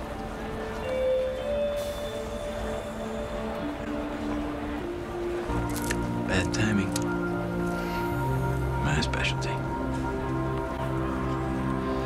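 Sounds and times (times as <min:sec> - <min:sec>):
long held synth notes: 0:00.1 - 0:06.3.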